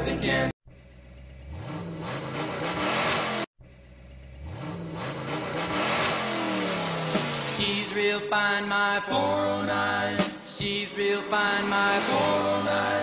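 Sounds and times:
car engine accelerating: 0:00.6 - 0:08.6, 0:10.7 - 0:13.0.

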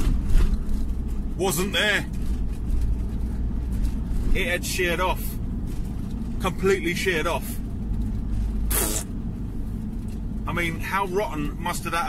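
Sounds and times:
van engine and road rumble: 0:00.0 - 0:12.0
short hiss: 0:08.7 - 0:09.1.

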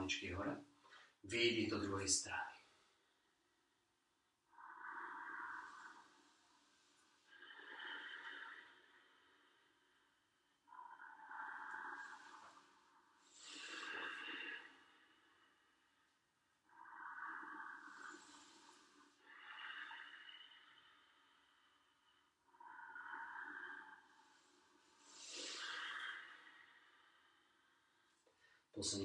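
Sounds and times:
slow deep breathing: 0:02.5 - 0:28.8.

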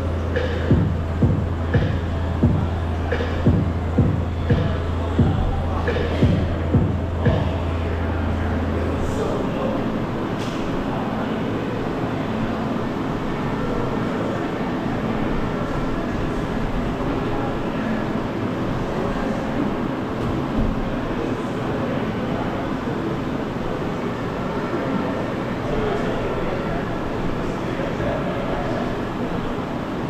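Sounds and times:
echoing training hall room noise: 0:00.0 - 0:30.0
muffled voices: 0:00.0 - 0:30.0.

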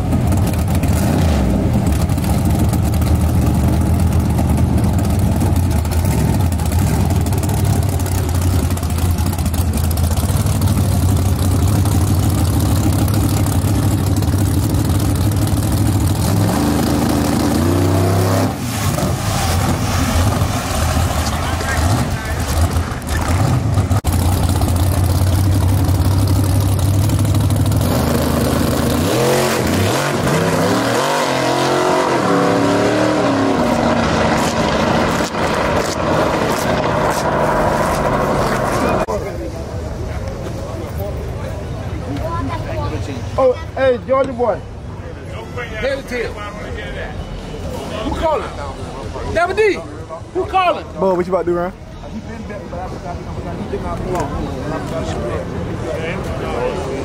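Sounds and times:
drag car engine revving: 0:00.0 - 0:39.2.

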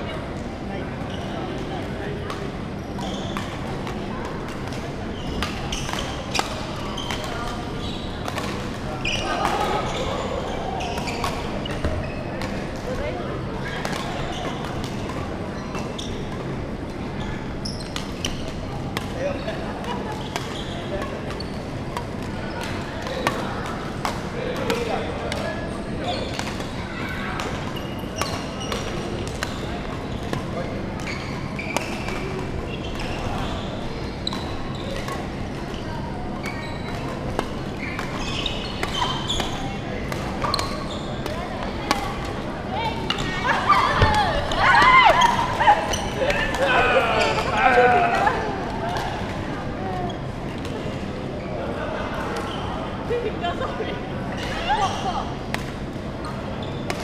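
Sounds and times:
voices in large hall: 0:00.0 - 0:57.0
rackets hitting shuttlecock: 0:36.4 - 0:42.4.

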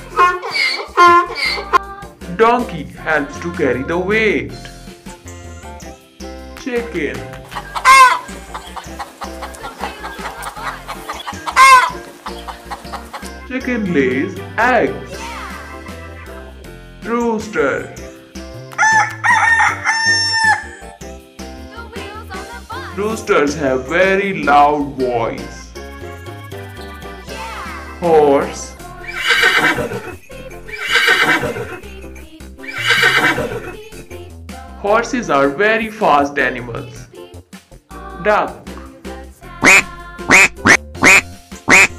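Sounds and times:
chicken clucking and squawking: 0:00.0 - 0:01.8, 0:07.5 - 0:13.4, 0:18.8 - 0:20.9, 0:29.0 - 0:32.0, 0:32.6 - 0:34.0, 0:39.6 - 0:41.9
background music: 0:00.0 - 0:41.9
horse neighing: 0:00.1 - 0:01.8, 0:29.0 - 0:31.9, 0:32.7 - 0:33.9.

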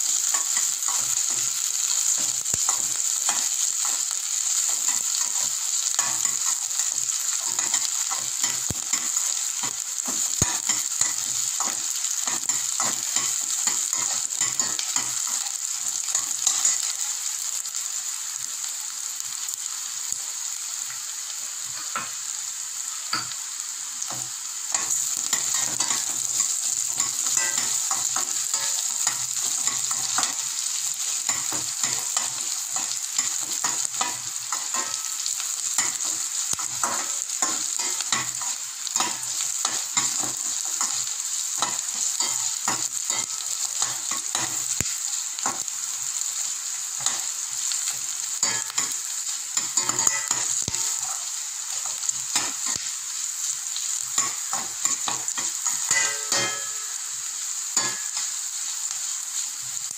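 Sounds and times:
food sizzling in a pan: 0:00.0 - 0:59.9
spatula scraping a pan: 0:24.0 - 0:44.8, 0:49.6 - 0:52.8, 0:54.0 - 0:57.0.

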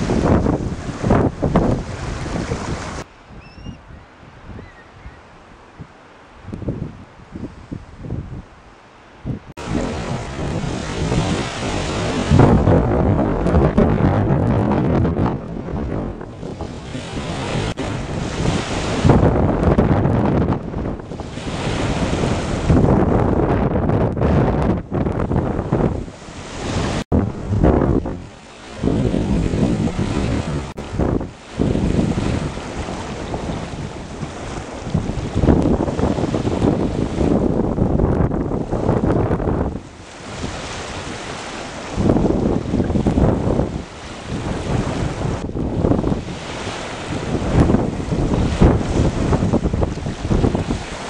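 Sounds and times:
rough sea rushing: 0:00.0 - 0:51.0
wind buffeting microphone: 0:00.0 - 0:51.0.

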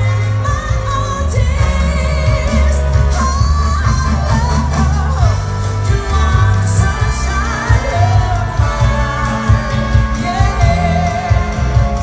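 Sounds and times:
heavy bass line: 0:00.0 - 0:12.0
live soul band: 0:00.0 - 0:12.0.

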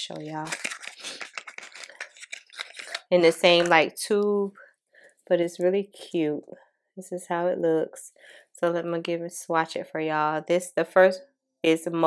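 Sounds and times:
plastic tubes rustling and clicking: 0:00.1 - 0:03.8.

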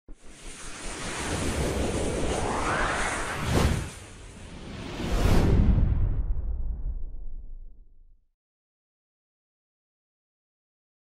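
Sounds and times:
rushing wind-like intro effect: 0:00.1 - 0:07.7
low rumble: 0:01.4 - 0:08.2.

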